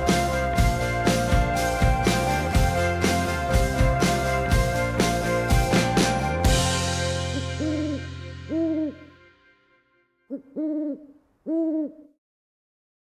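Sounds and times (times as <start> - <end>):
music chord and drum hit: 0.0 - 9.6
owl hooting: 7.3 - 9.1, 10.3 - 12.2.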